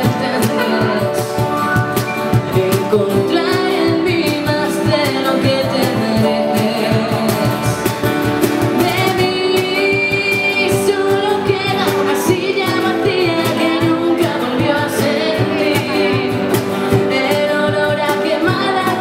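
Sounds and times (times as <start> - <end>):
woman singing: 0.0 - 8.0, 8.6 - 19.0
cajon beat: 0.0 - 19.0
strummed acoustic guitars: 0.0 - 19.0.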